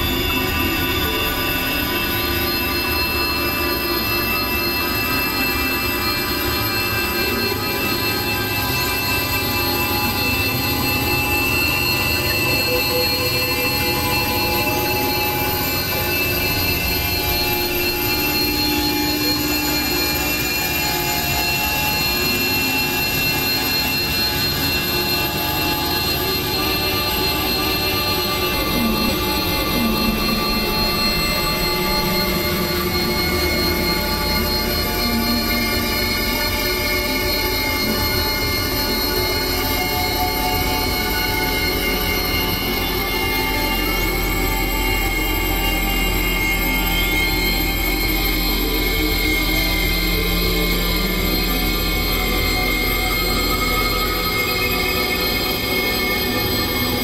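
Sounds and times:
electronic synthesizer drone: 0.0s - 57.0s.

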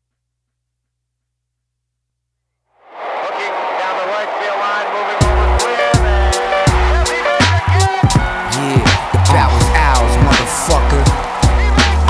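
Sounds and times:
noisy music bed: 3.0s - 12.0s.

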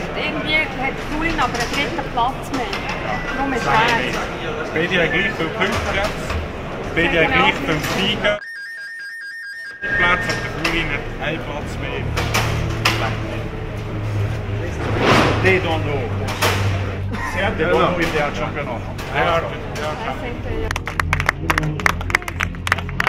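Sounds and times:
people talking: 0.0s - 8.4s, 9.8s - 12.2s, 12.8s - 23.0s.

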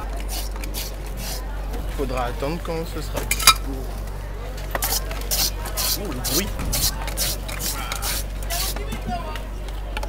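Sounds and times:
metal scraper shaving ice: 0.2s - 1.4s, 4.7s - 8.8s.

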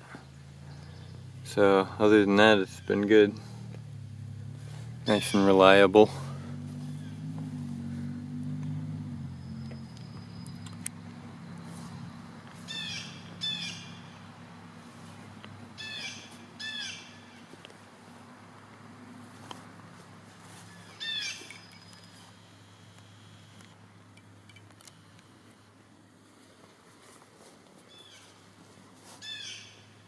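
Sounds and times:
songbird chirping: 0.0s - 25.7s, 27.4s - 30.0s
steady low hum: 0.0s - 29.1s.

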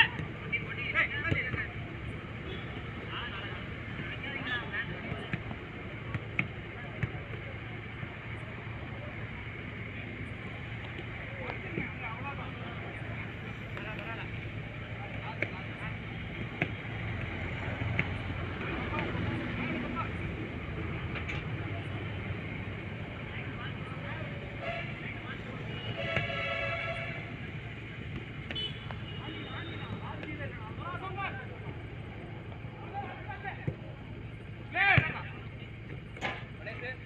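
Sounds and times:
ball being kicked: 34.9s - 35.2s.

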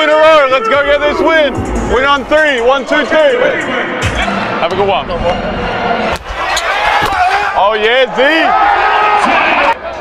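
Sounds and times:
voices of players and crowd: 0.0s - 10.0s
court noise: 0.7s - 10.0s.

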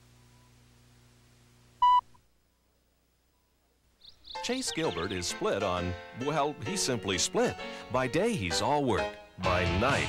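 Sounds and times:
faint low hum: 0.0s - 4.2s
short loud tone beep: 1.8s - 2.0s.

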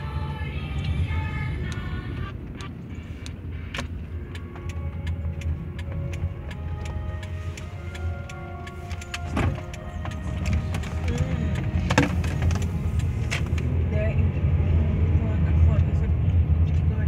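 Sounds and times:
faint music from car stereo: 0.0s - 17.0s
road and engine rumble: 0.0s - 17.0s.

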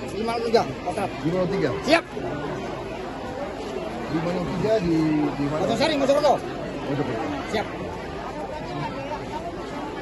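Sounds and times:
crowd chatter: 0.0s - 10.0s
men talking close by: 0.0s - 10.0s.

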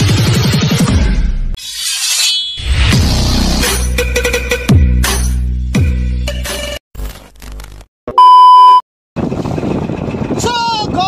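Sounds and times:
electronic beep tone: 8.1s - 8.8s
wind on microphone: 9.2s - 11.0s.

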